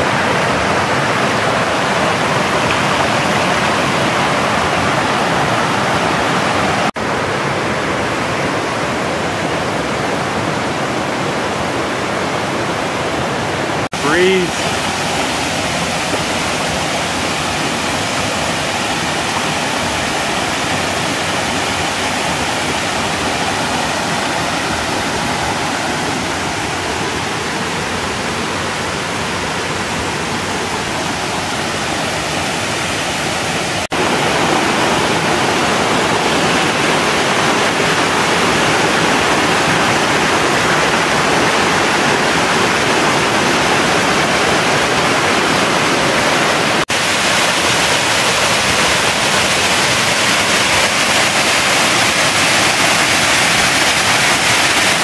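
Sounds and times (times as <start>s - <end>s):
waterfall rushing: 0.0s - 55.0s.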